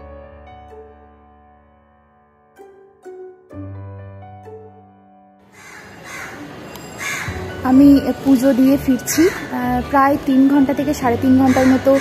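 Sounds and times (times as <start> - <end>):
woman speaking: 7.6 - 12.0.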